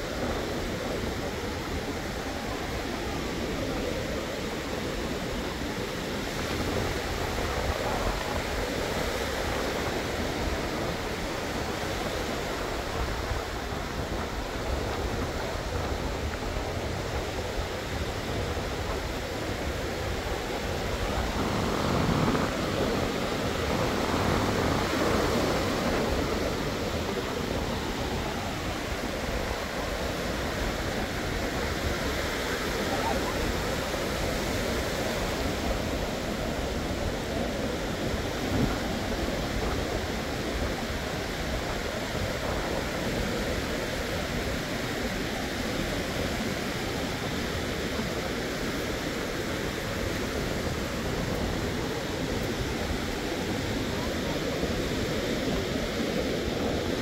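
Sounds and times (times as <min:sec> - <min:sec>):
ocean surf breaking on beach: 0:00.0 - 0:57.0.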